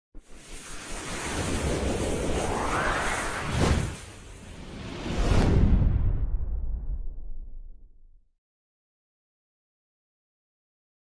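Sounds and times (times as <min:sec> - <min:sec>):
rushing whoosh: 0:00.2 - 0:07.2.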